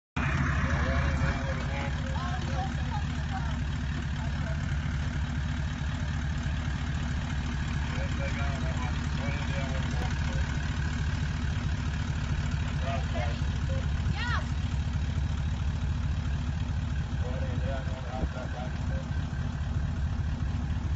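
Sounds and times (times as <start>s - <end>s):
vehicle engine running at low revs: 0.2s - 20.9s.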